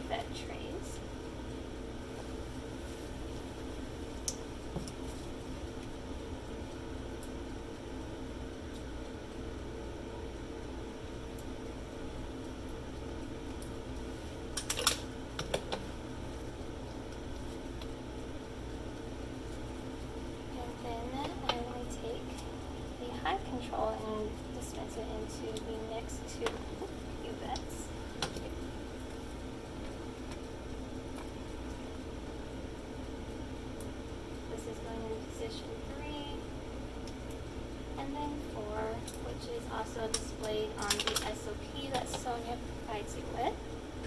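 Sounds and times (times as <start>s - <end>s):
lab analyzer hum: 0.0s - 44.0s.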